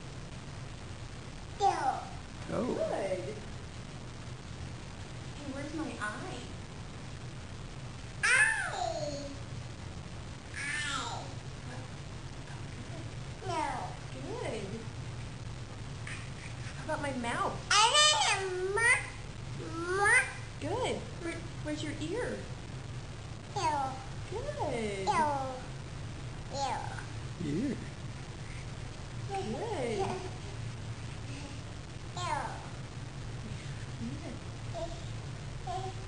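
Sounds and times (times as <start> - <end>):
toddler imitating cat meow: 8.2 - 9.3.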